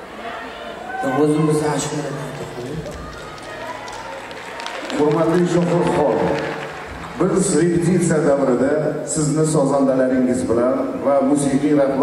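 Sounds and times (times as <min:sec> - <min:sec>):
man talking: 0:01.0 - 0:02.9, 0:04.9 - 0:06.6, 0:07.2 - 0:12.0.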